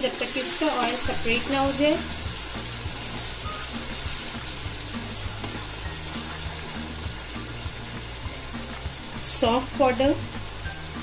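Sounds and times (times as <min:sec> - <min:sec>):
background music: 0:00.0 - 0:11.0
masala sizzling in a frying pan: 0:00.0 - 0:11.0.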